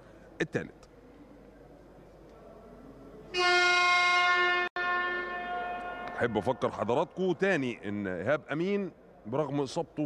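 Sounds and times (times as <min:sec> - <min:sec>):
arena game horn: 0:03.3 - 0:06.4.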